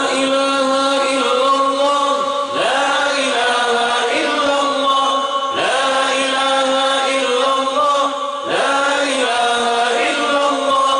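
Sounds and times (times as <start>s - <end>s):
men chanting in held notes: 0.0s - 10.9s
singer on a microphone: 0.0s - 10.9s.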